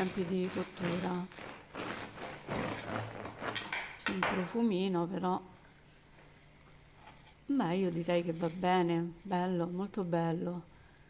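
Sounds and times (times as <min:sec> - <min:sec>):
bread knife sawing crust: 0:00.0 - 0:03.6.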